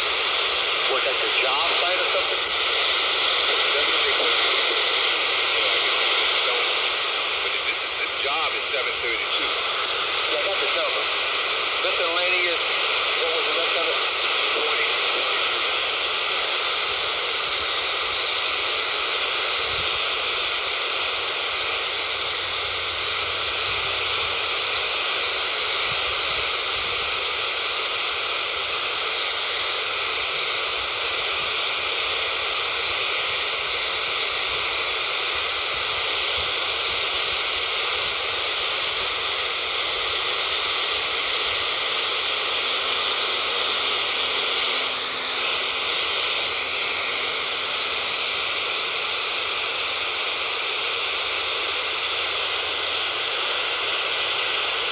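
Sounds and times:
radio static hiss: 0.0s - 54.9s.

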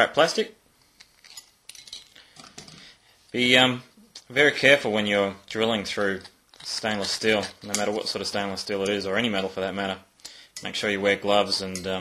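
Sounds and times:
metal and plastic parts clinking: 1.0s - 2.9s.

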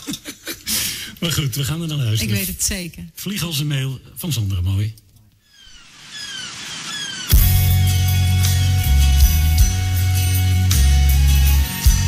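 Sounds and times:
gulls calling: 5.5s - 7.7s
surf rushing: 5.8s - 7.4s.

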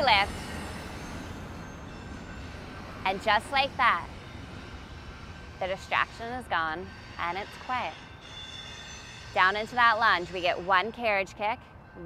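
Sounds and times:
train rail rumble: 0.0s - 11.6s.

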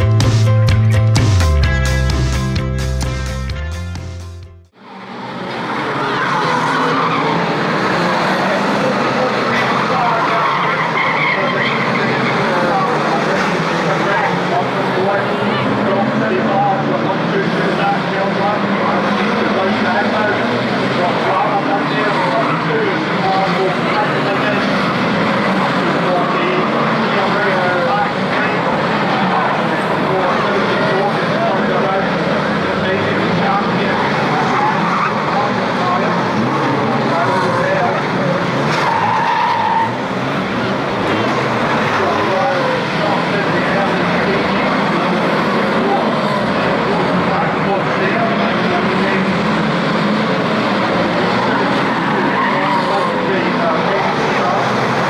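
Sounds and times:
race car engines revving: 4.7s - 55.0s
tyres skidding: 4.8s - 55.0s.

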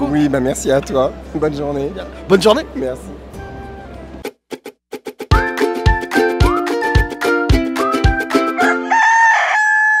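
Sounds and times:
plucked strings and drum jingle: 4.2s - 8.8s
rooster crowing: 8.5s - 10.0s.

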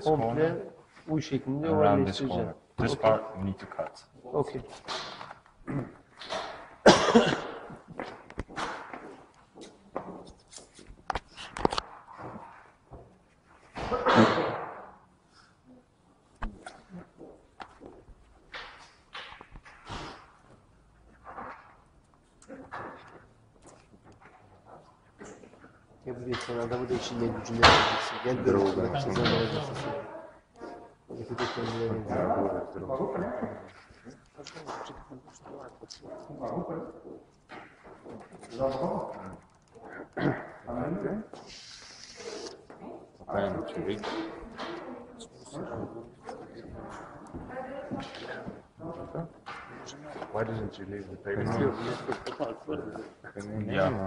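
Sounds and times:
person coughing: 6.8s - 7.8s
people talking: 26.3s - 30.2s, 51.3s - 54.0s.

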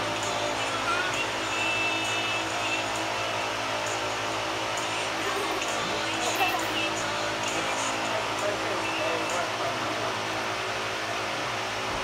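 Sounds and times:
machine hum and hiss: 0.0s - 12.0s.

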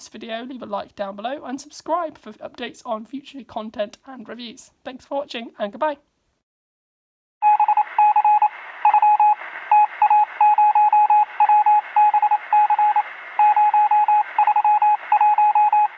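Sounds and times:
radio-like hiss: 7.5s - 15.9s.

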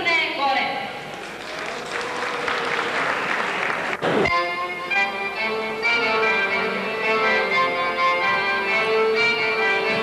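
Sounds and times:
audience applauding: 1.1s - 4.2s.

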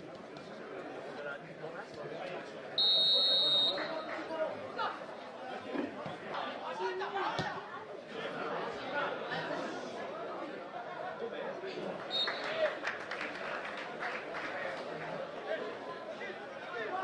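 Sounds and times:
referee's whistle blast: 2.8s - 3.9s.

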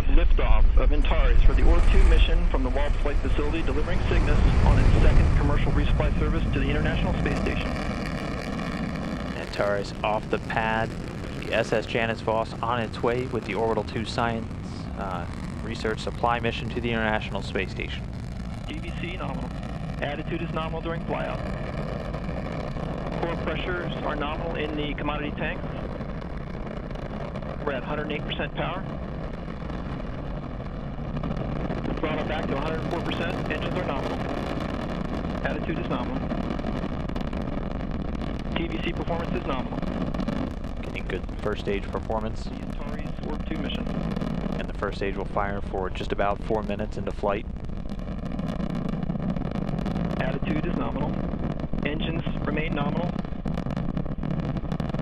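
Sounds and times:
rocket engines rumbling: 0.0s - 55.0s.

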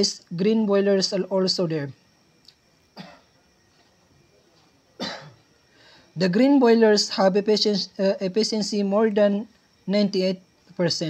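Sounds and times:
man coughing: 3.0s - 3.3s, 5.0s - 5.4s.

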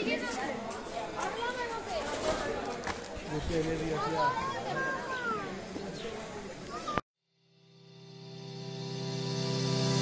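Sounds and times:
voices on railway platform: 0.0s - 7.0s.

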